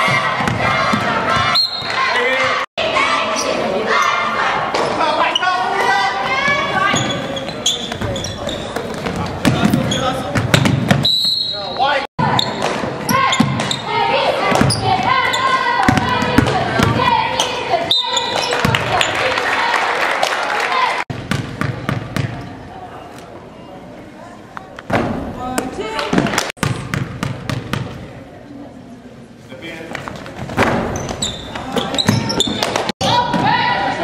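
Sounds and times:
people shouting and talking: 0:00.0 - 0:21.1, 0:28.0 - 0:34.0.

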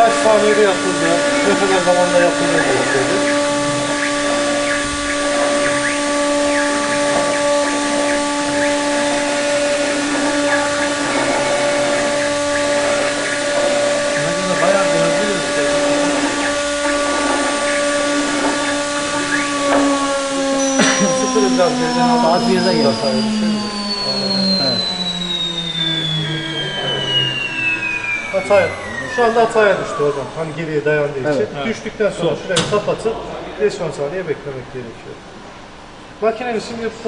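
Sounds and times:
router spindle whining: 0:00.0 - 0:32.1.

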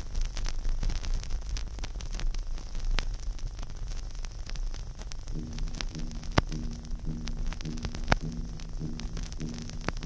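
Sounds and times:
vinyl surface crackle: 0:00.0 - 0:10.0
record scratch clicks: 0:04.0 - 0:10.0
pulsing low hum: 0:05.3 - 0:10.0.

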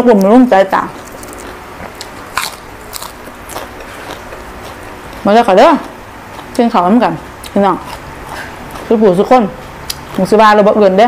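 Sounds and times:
chewing crisp raw greens: 0:00.7 - 0:06.7, 0:07.4 - 0:10.3.

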